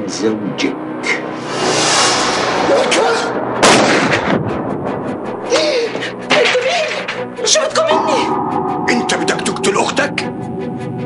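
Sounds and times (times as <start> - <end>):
rising noise: 1.2 - 4.0
loud gunshot: 3.6 - 4.3.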